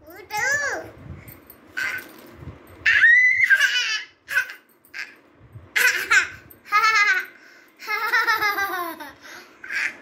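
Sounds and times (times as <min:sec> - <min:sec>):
girl squealing: 0:02.9 - 0:04.1
girl laughing: 0:05.8 - 0:10.0.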